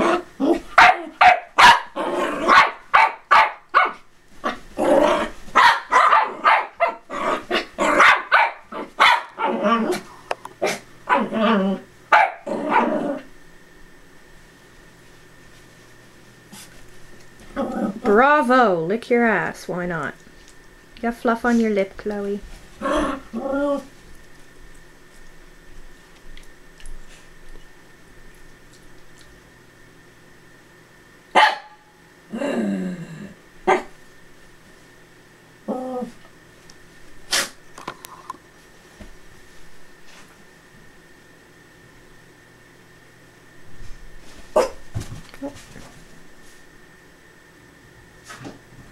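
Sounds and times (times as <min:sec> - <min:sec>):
small dog barking: 0:00.0 - 0:04.6, 0:05.5 - 0:10.0, 0:10.6 - 0:11.4, 0:12.1 - 0:13.0, 0:31.3 - 0:31.9, 0:33.7 - 0:33.9, 0:44.5 - 0:44.8
dog yip: 0:05.6 - 0:07.0, 0:08.0 - 0:09.5, 0:31.4 - 0:31.8
person speaking: 0:21.0 - 0:22.4.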